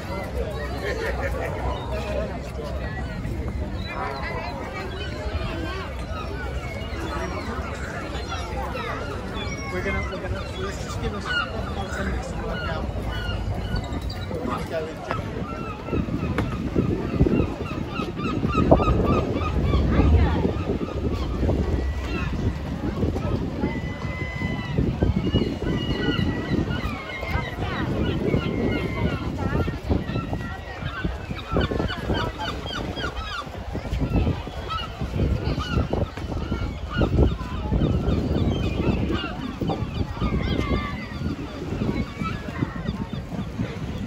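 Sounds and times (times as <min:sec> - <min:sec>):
crowd chatter: 0:00.0 - 0:44.0
gulls calling: 0:00.0 - 0:44.0
wind on microphone: 0:00.0 - 0:44.0.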